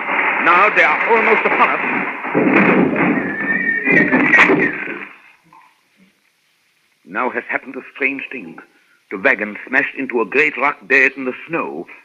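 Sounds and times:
loud noisy rush: 0.0s - 5.2s
horse whinnying: 3.1s - 5.1s.

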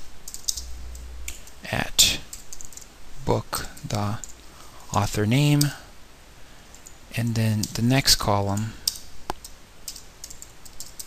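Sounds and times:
computer keyboard typing: 0.2s - 1.6s, 2.3s - 2.9s, 6.7s - 7.0s, 8.5s - 11.0s.

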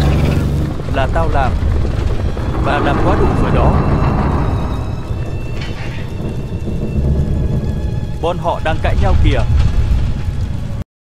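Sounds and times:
deep rumble like thunder: 0.0s - 10.8s.

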